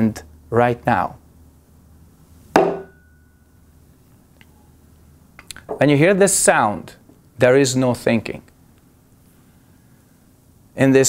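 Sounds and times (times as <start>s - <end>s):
wooden stick knock: 2.6s - 3.0s.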